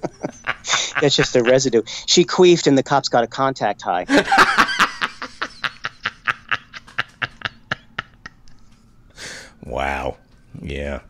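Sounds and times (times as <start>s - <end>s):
person laughing: 0.0s - 1.8s, 4.1s - 8.6s.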